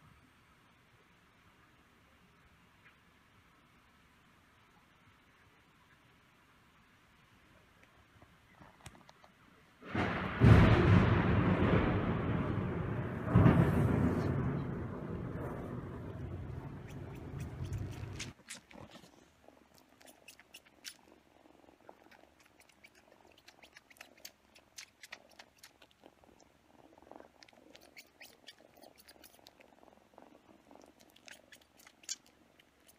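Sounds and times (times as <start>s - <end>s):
thunder clap and rumble: 9.8s - 18.2s
kitten suckling clicks: 16.8s - 19.1s, 19.7s - 21.1s, 21.9s - 26.0s, 27.1s - 29.6s, 30.7s - 32.9s.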